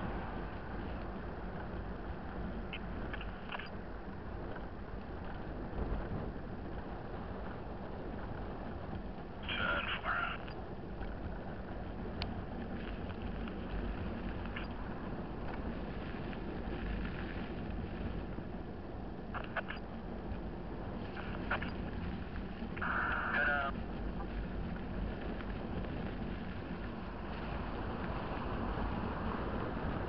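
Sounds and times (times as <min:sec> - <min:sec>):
wind and road rush: 0:00.0 - 0:30.0
faint clicks: 0:02.6 - 0:06.0.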